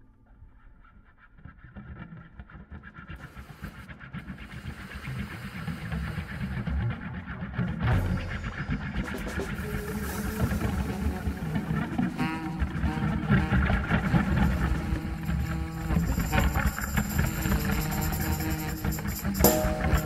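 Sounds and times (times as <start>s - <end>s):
drums: 1.8s - 20.0s
keyboards: 2.6s - 20.0s
jazz saxophone: 8.0s - 20.0s.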